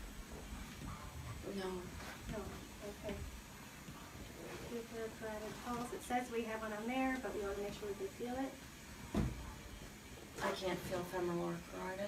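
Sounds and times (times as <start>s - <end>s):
woman speaking: 1.4s - 3.3s, 4.6s - 8.6s, 10.4s - 12.0s.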